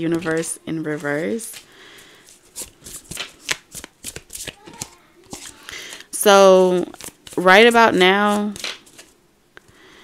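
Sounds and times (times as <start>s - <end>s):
cards being shuffled: 0.1s - 9.2s.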